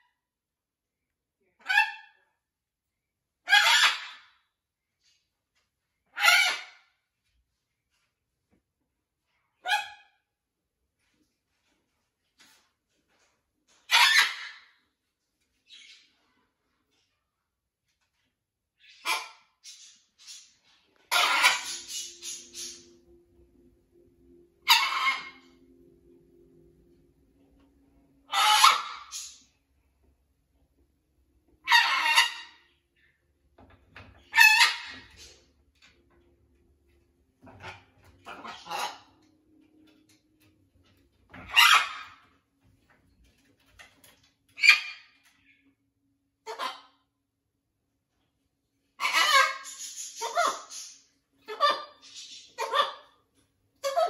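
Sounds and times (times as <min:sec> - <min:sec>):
macaw squawking: 0:21.1 - 0:23.0, 0:24.6 - 0:25.6, 0:28.3 - 0:29.5, 0:31.6 - 0:32.7, 0:34.3 - 0:35.3, 0:37.6 - 0:39.2, 0:41.5 - 0:42.2.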